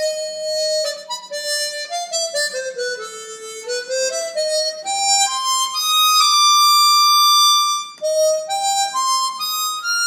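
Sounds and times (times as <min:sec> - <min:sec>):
harmonica melody: 0:00.0 - 0:10.0.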